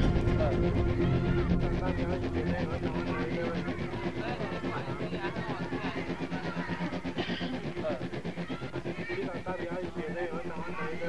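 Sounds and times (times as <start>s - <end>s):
people talking: 0.0s - 11.0s
steady low hum: 0.0s - 11.0s.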